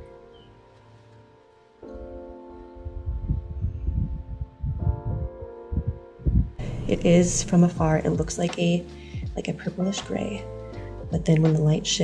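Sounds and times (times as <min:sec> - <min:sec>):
soft background music: 0:00.0 - 0:12.0
wind buffeting microphone: 0:02.8 - 0:08.4.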